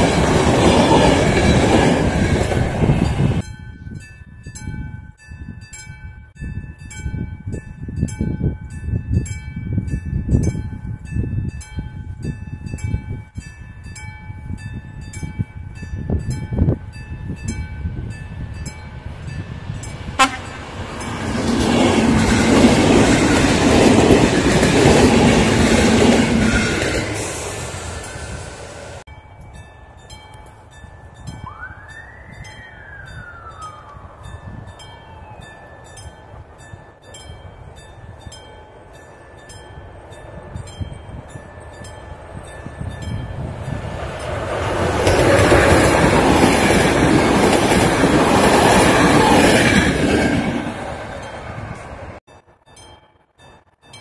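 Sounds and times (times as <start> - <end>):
train wheels clattering on rails: 0.0 - 3.4, 19.8 - 28.3, 39.6 - 52.0
passenger train passing: 0.0 - 4.7, 5.6 - 54.0.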